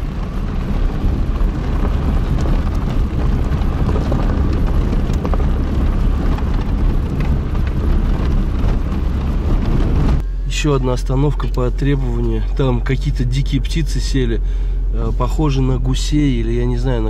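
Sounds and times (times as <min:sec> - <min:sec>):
car rumbling on a dirt road: 0:00.0 - 0:17.0.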